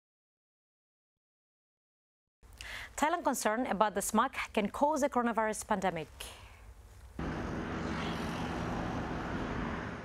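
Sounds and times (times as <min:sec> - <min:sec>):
city engine noise: 0:07.2 - 0:10.0.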